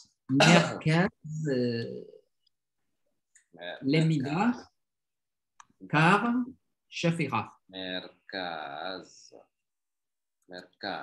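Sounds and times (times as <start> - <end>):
man clearing his throat: 0.3 - 0.8
man coughing: 0.3 - 0.9.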